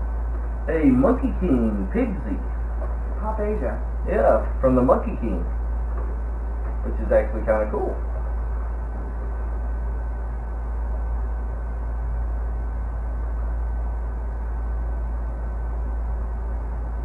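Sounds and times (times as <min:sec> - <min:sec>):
air conditioner running: 0:00.0 - 0:17.0.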